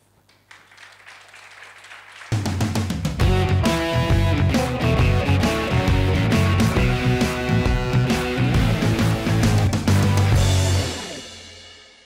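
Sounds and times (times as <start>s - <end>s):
audience applauding: 0.3s - 3.2s.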